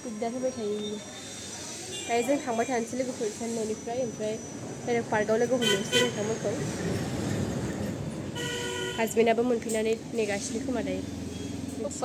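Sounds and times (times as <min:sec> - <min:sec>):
traffic noise: 0:00.0 - 0:12.0
vehicle horn honking: 0:05.6 - 0:06.3, 0:08.4 - 0:09.2.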